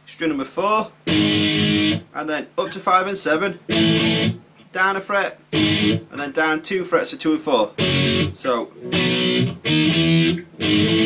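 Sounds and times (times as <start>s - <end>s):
electric guitar power chords: 1.1s - 2.1s, 3.7s - 4.4s, 5.5s - 6.1s, 7.8s - 11.0s.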